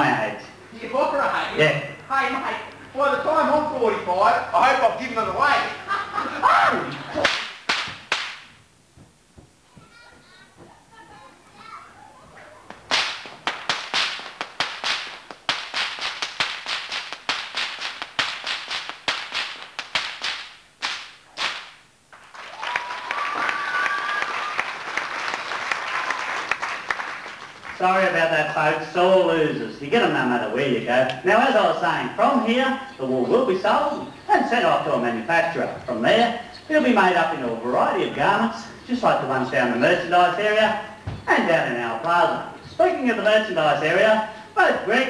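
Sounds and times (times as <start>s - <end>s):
stockwhips cracking: 7.2s - 8.6s, 12.7s - 21.8s
audience applause: 22.2s - 27.8s.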